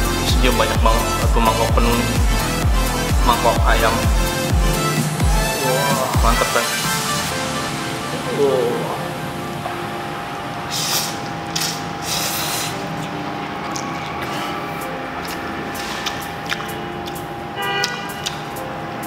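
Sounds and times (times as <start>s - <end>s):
background music: 0.0s - 19.0s
noodles being slurped: 10.7s - 16.7s.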